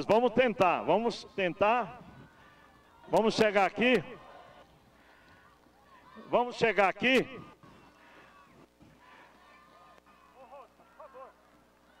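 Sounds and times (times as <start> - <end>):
crowd shouts: 0.0 - 12.0
distant crowd voices: 0.0 - 12.0.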